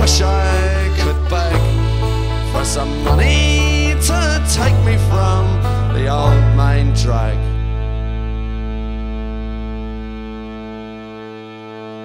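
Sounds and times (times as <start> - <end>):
low bass note: 0.0 - 12.0.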